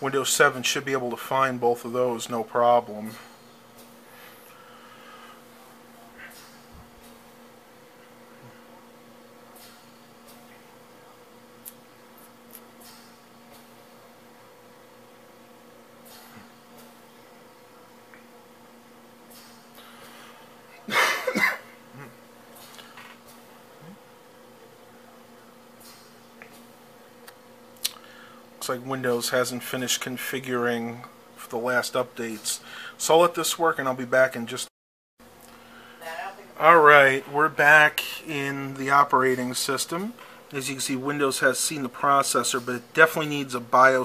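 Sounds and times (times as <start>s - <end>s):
desktop computer humming: 0.0s - 34.6s, 35.4s - 44.0s.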